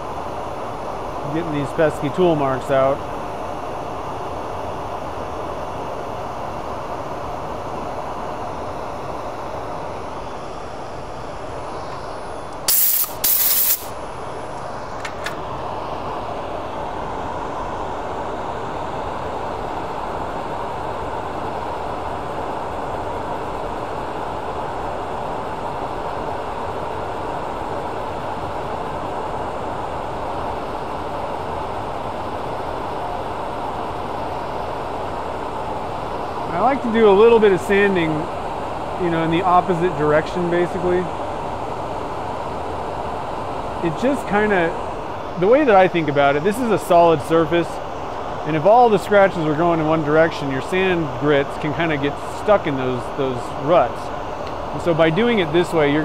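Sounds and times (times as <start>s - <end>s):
loud hissing bursts: 12.6s - 14.0s.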